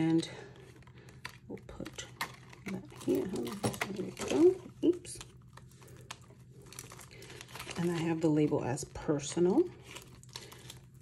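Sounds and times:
plastic envelopes crinkling: 0.0 - 11.0.

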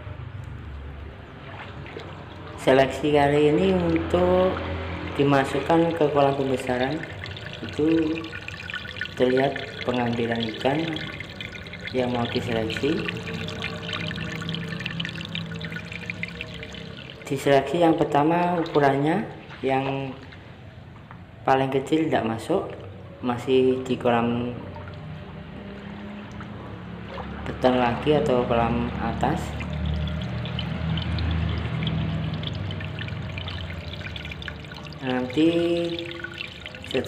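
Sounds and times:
low steady hum: 0.0 - 37.0
small splashes and drips: 0.3 - 21.4, 23.8 - 37.0
water pouring into a pond: 0.6 - 20.6, 24.6 - 37.0.

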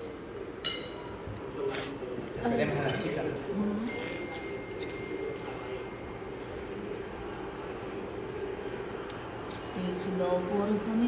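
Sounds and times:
electric fan whirring: 0.0 - 11.0.

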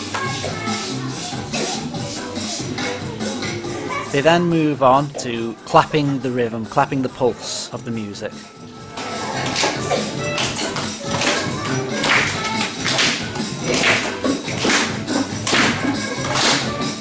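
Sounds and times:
recorded song playing: 0.0 - 17.0
children clapping in unison: 9.4 - 17.0.

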